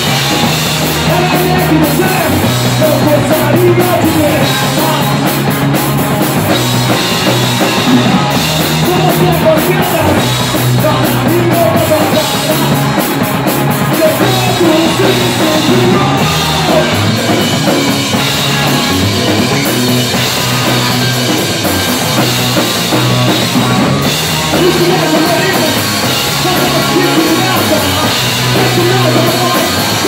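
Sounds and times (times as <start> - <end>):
drum kit: 0.0 - 30.0
electric bass: 0.0 - 30.0
electric guitar: 0.0 - 30.0.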